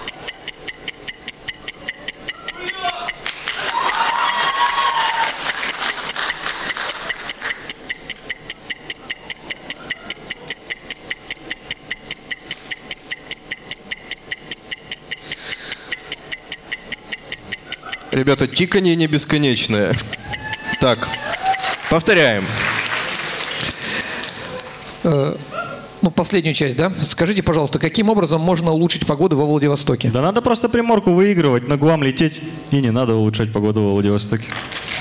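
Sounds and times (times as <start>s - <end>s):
clock ticking: 0.0s - 22.2s
audience laughter and chatter: 17.6s - 25.0s.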